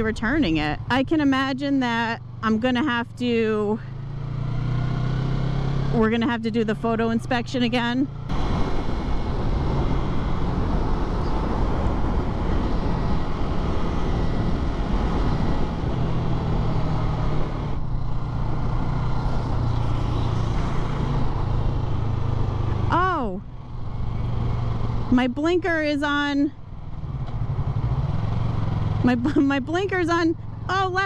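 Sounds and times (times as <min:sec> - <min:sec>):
motorcycle engine running: 0:00.0 - 0:31.0.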